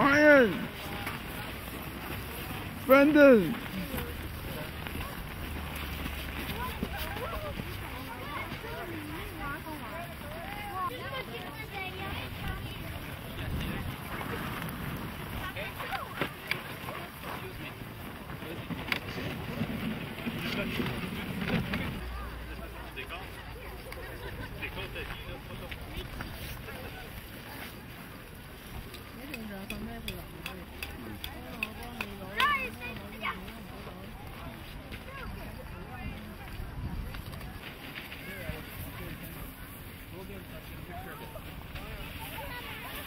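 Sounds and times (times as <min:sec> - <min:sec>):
adults and children talking: 0:00.0 - 0:43.0.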